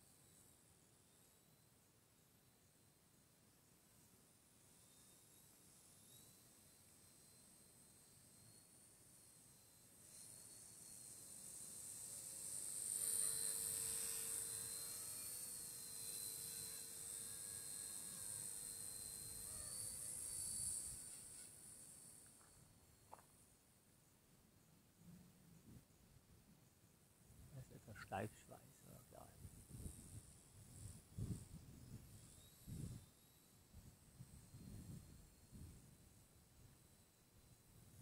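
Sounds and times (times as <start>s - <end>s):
model helicopter whine: 4.6s - 23.5s, 27.6s - 38.0s.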